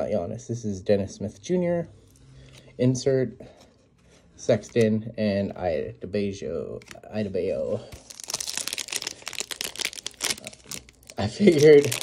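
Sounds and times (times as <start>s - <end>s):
foil wrapper being torn open: 8.0s - 12.0s.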